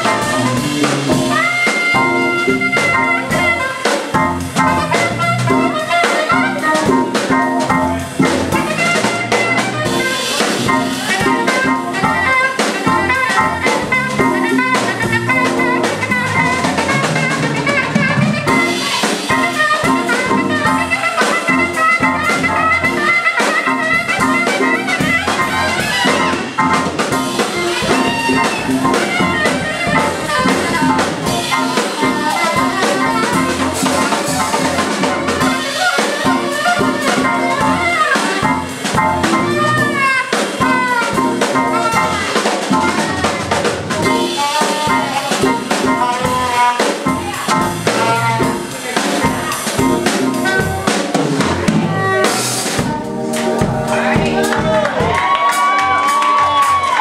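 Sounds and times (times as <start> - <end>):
saxophone melody: 0.0 - 55.3
drum kit: 0.0 - 57.0.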